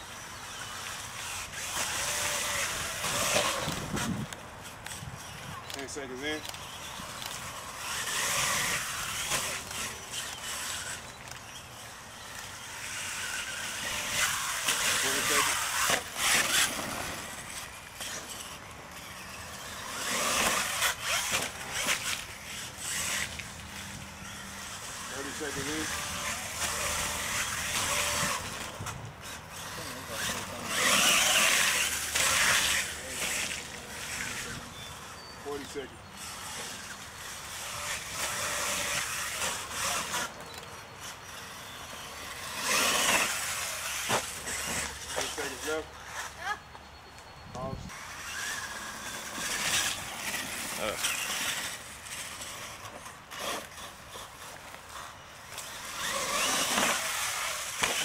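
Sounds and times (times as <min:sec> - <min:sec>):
toy truck motor revving: 0:00.0 - 0:58.0.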